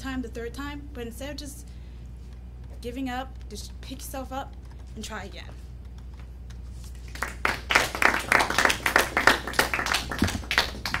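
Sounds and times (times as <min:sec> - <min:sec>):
small audience applauding: 0:07.0 - 0:11.0.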